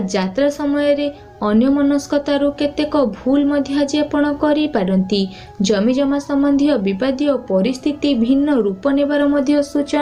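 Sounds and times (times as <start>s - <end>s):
woman narrating: 0.0s - 10.0s.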